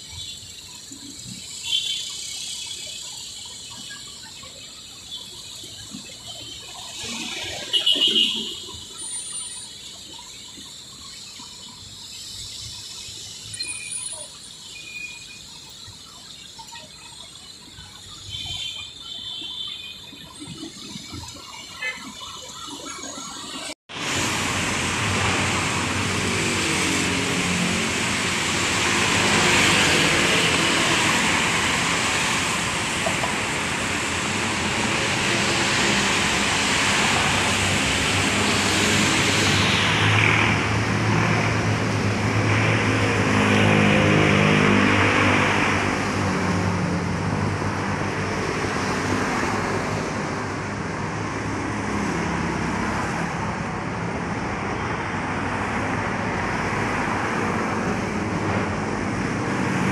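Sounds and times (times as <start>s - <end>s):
road traffic passing: 0.0s - 59.9s.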